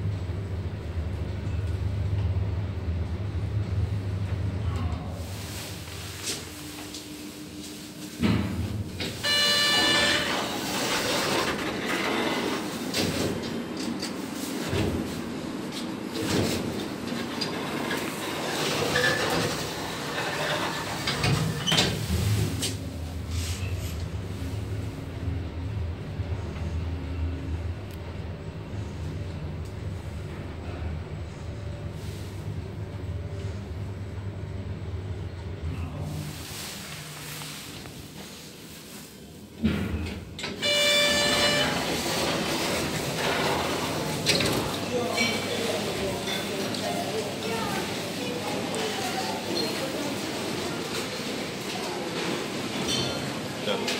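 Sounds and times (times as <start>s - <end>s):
elevator mechanical rumble: 0.0s - 53.6s
loud electronic tone: 9.2s - 10.7s.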